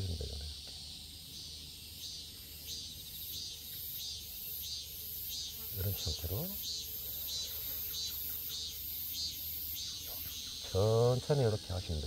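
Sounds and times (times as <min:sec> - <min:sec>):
insect chirping: 0:00.0 - 0:12.0
low outdoor background: 0:00.0 - 0:12.0.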